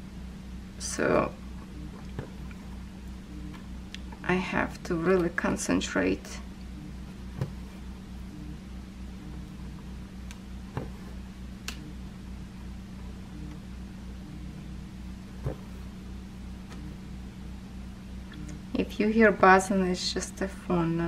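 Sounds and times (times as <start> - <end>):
phone buzzing: 3.2 - 3.8.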